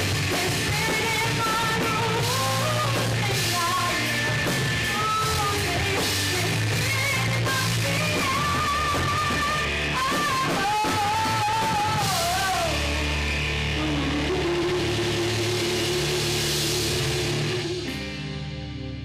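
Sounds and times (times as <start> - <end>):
woman singing belted vocals: 0.0 - 17.9
live rock band: 0.0 - 19.0.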